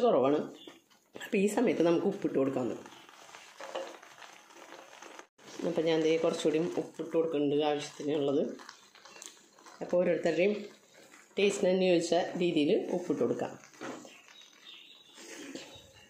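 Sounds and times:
woman talking: 0:01.2 - 0:02.8, 0:05.6 - 0:08.6, 0:09.8 - 0:10.7, 0:11.4 - 0:13.6.

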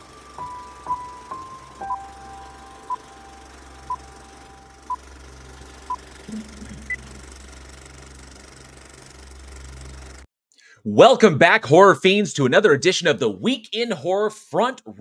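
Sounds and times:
low mechanical hum: 0:00.0 - 0:10.3
higher beep: 0:05.9 - 0:07.2.

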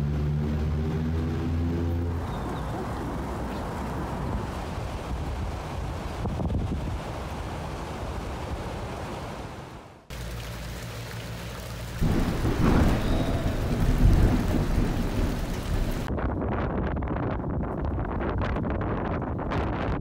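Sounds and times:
steady rain: 0:02.1 - 0:16.1
thunder clap and rumble: 0:12.0 - 0:20.0.

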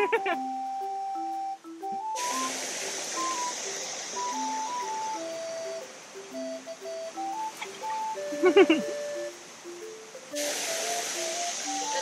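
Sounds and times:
chiming background music: 0:00.0 - 0:12.0
water pouring and splashing: 0:02.0 - 0:08.3, 0:10.3 - 0:12.0.

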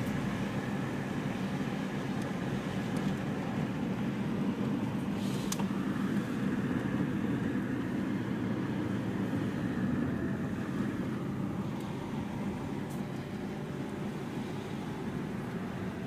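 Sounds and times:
car engine and tyre noise: 0:00.0 - 0:16.0.

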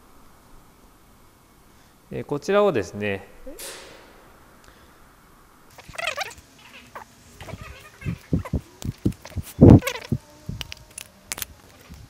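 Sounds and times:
metal plate clack: 0:03.3 - 0:05.8
metal plates clinking and scraping: 0:03.4 - 0:04.9.

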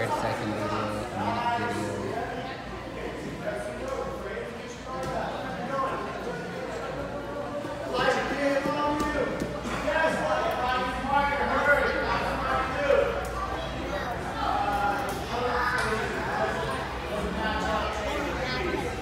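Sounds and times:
indistinct chatter with children: 0:00.0 - 0:19.0.

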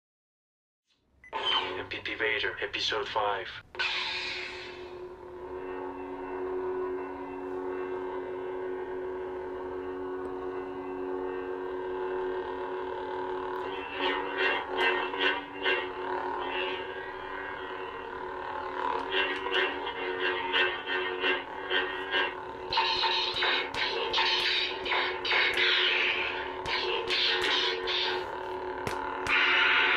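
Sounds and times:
lightsaber ignition burst: 0:03.8 - 0:05.0
low electric hum: 0:04.4 - 0:29.9
lightsaber swing and clash effects: 0:22.7 - 0:29.9.

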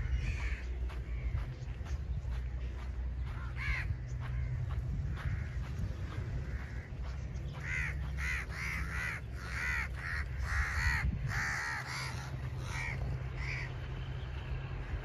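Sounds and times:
crows cawing: 0:00.0 - 0:02.0, 0:03.2 - 0:13.8
low steady rumble: 0:00.0 - 0:15.0.

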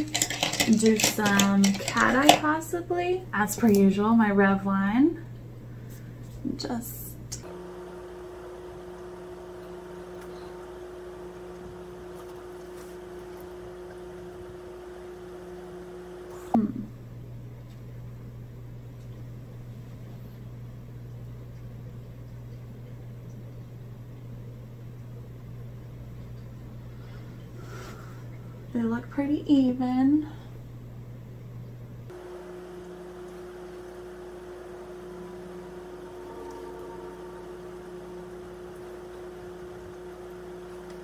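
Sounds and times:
low electrical hum: 0:00.0 - 0:41.0.

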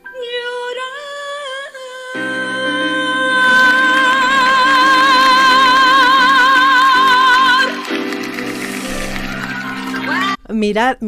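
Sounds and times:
instrumental accompaniment: 0:02.2 - 0:10.4.

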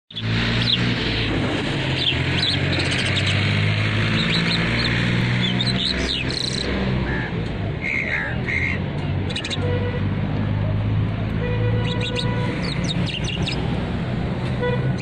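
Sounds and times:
bird chirping: 0:00.1 - 0:01.2, 0:01.9 - 0:06.8, 0:09.3 - 0:09.6, 0:11.8 - 0:13.7.

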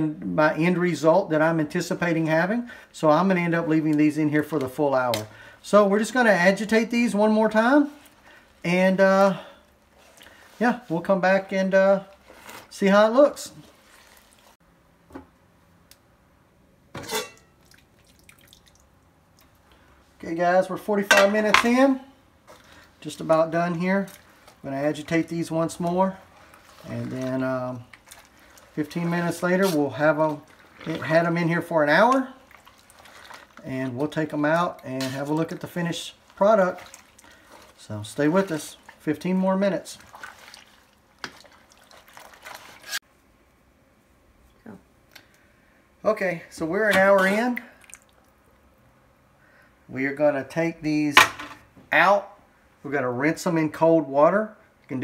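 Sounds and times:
liquid sloshing and dripping: 0:13.5 - 0:14.6, 0:17.2 - 0:20.0, 0:22.4 - 0:43.0, 0:46.9 - 0:48.8
metal pot lid clanking: 0:17.0 - 0:17.5
water dripping: 0:17.6 - 0:19.8, 0:47.4 - 0:48.7.

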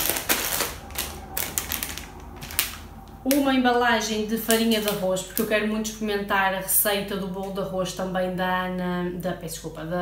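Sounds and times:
plastic packaging rustling: 0:00.0 - 0:03.5.

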